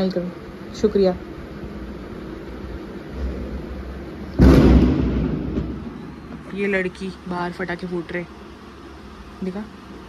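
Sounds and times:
firecracker bang: 0:04.3 - 0:06.5.

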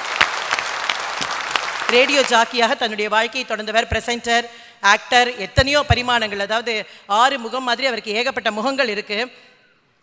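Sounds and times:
audience applauding: 0:00.0 - 0:02.3
woman speaking: 0:01.9 - 0:09.4.

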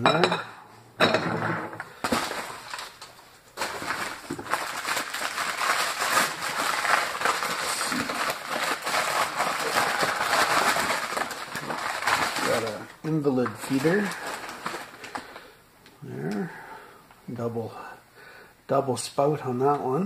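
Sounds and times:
newspaper rustling and crackling: 0:02.0 - 0:15.5.

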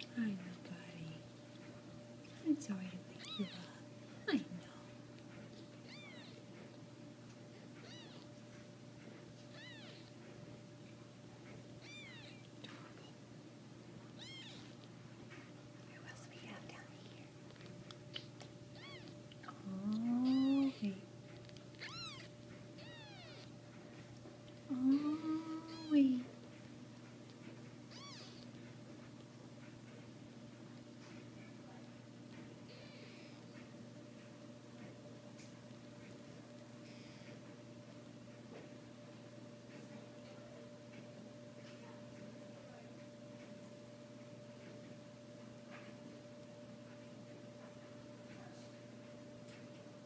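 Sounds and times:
kittens mewing: 0:05.8 - 0:06.5, 0:09.5 - 0:10.2, 0:11.8 - 0:13.1, 0:14.2 - 0:14.8, 0:18.1 - 0:21.0, 0:21.7 - 0:23.6, 0:27.9 - 0:28.6
lower drawn-out kitten calls: 0:05.9 - 0:06.4, 0:09.5 - 0:10.1, 0:11.8 - 0:12.5, 0:14.2 - 0:14.8, 0:21.8 - 0:23.6, 0:27.9 - 0:28.5.

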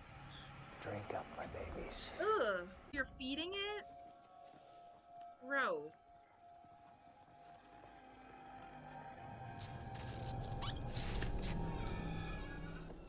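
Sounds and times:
faint high squeaks: 0:09.4 - 0:13.0.

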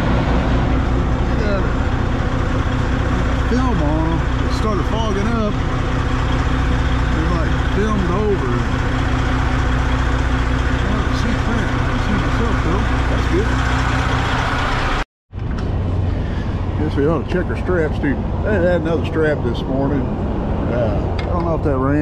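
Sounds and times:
truck diesel engine idling: 0:00.0 - 0:15.0.

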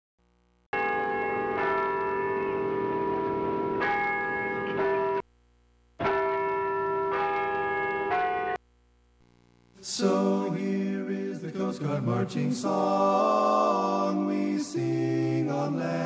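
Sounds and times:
bells ringing: 0:00.8 - 0:05.2, 0:06.0 - 0:08.6.

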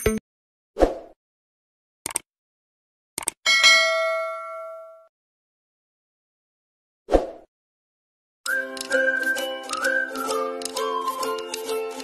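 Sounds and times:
quick clicks: 0:02.0 - 0:02.3, 0:03.2 - 0:03.4
bell ding: 0:03.5 - 0:05.1.

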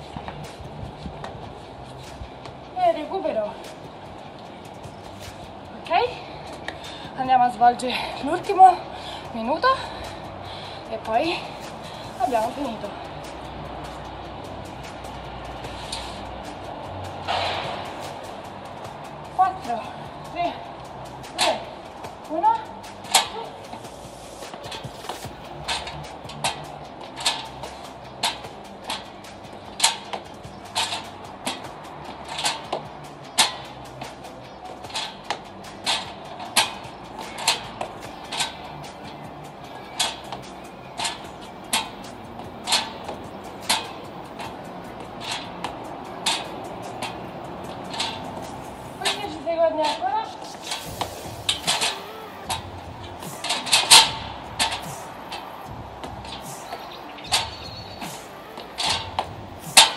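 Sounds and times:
shoes clicking on stepladder: 0:06.4 - 0:59.9.

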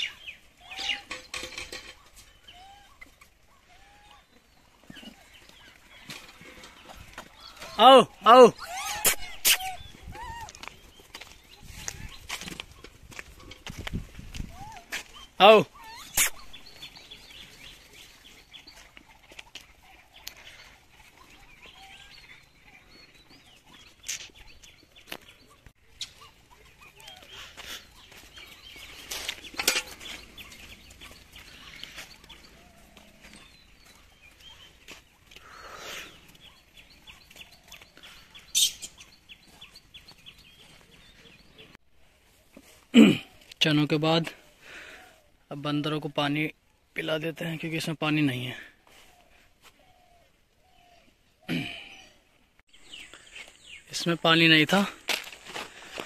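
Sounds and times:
small birds chirping: 0:00.0 - 0:56.0
monkeys squeaky calls: 0:02.4 - 0:04.3, 0:07.5 - 0:10.8, 0:14.5 - 0:17.0.

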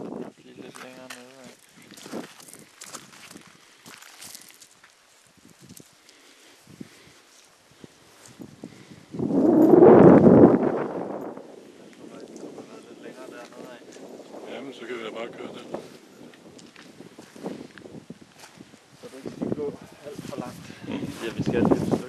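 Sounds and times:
footsteps on forest path: 0:00.7 - 0:08.6, 0:15.8 - 0:19.5, 0:20.1 - 0:22.0
wind gust buffeting microphone: 0:07.8 - 0:22.0.

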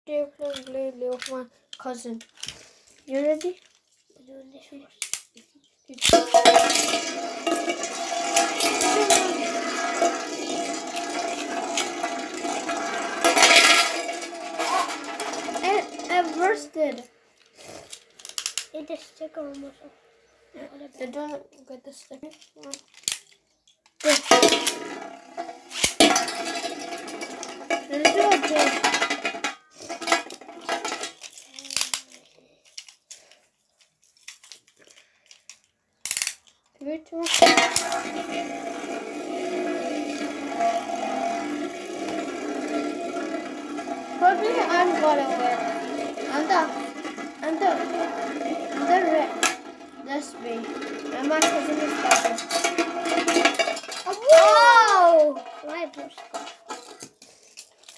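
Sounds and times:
spinning tops clashing: 0:06.0 - 0:17.1, 0:24.0 - 0:32.0, 0:37.2 - 0:57.9
spinning tops grinding in metal pan: 0:06.0 - 0:18.8, 0:24.0 - 0:31.9, 0:37.2 - 0:57.9.

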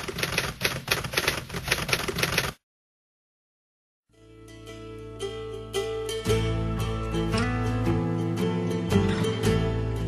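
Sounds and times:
typewriter keys clattering: 0:00.0 - 0:02.6.

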